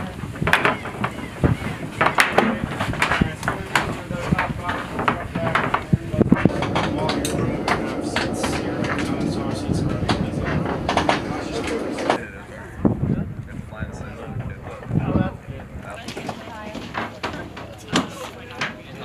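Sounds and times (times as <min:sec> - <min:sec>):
steady background noise: 0:00.0 - 0:19.0.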